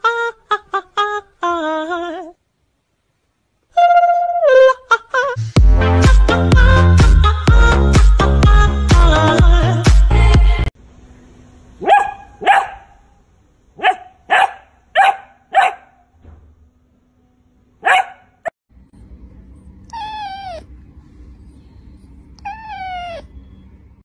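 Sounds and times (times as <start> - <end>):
puppy barking: 11.8 - 13.1, 13.8 - 16.1, 17.8 - 18.5.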